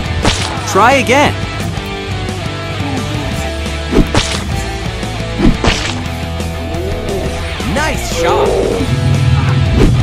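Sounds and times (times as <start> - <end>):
background music: 0.0 - 10.0
sharp whacks with bright crack: 0.2 - 0.6, 3.9 - 4.6, 5.4 - 6.1.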